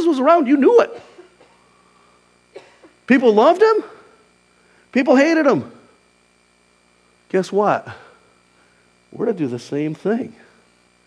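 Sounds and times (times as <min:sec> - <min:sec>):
steady low hum: 0:00.0 - 0:11.0
soft breath or cough: 0:01.0 - 0:03.0.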